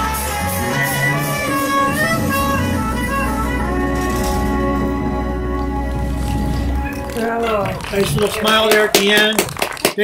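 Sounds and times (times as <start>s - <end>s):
trumpet holding a chord: 0.0s - 7.5s
jazz band playing: 0.0s - 9.8s.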